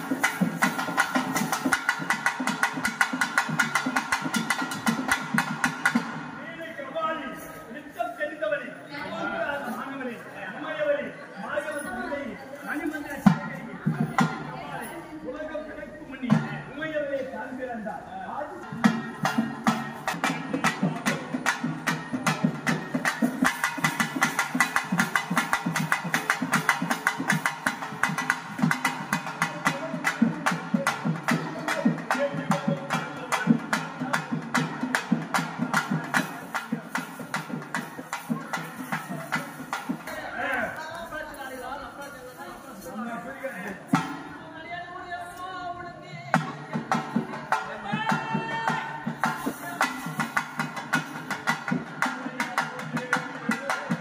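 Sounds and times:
folk drums playing fast rhythm: 0:00.0 - 0:06.5, 0:13.0 - 0:15.0, 0:16.2 - 0:16.8, 0:18.3 - 0:41.3, 0:43.8 - 0:44.4, 0:46.1 - 0:54.0.

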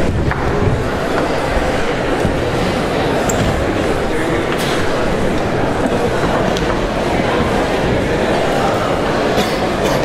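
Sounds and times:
audience chatting: 0:00.0 - 0:10.0.

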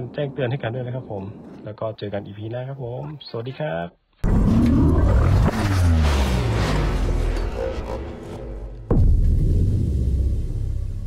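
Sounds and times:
deep cinematic boom: 0:04.2 - 0:11.0.

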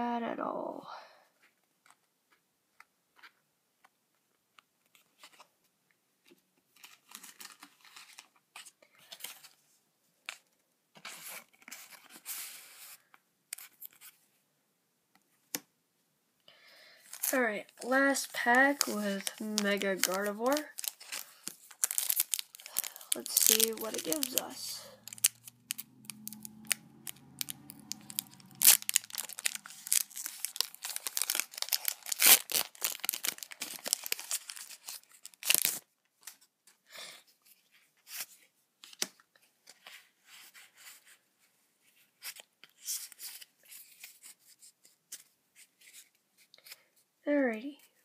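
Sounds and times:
cards rustling: 0:06.8 - 0:09.6, 0:17.0 - 0:36.5
foil wrapper tearing and crinkling: 0:17.1 - 0:36.4.

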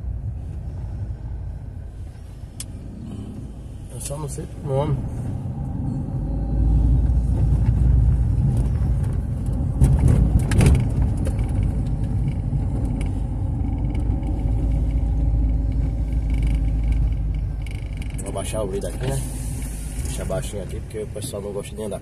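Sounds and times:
car engine and road rumble: 0:00.0 - 0:22.0.

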